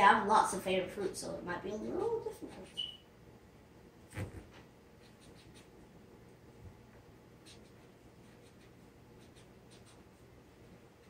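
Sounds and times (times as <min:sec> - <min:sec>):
pencil scratching on paper: 0:01.0 - 0:03.0, 0:05.0 - 0:05.8, 0:07.4 - 0:11.0.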